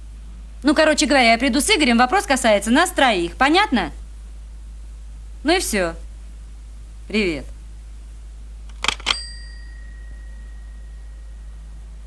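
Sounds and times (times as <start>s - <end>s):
telephone handset clacking down: 8.7s - 9.5s
phone bell ding: 9.0s - 11.1s.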